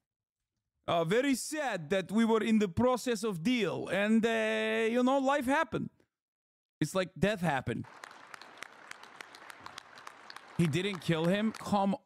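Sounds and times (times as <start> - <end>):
faint crowd applause: 7.8 - 12.0.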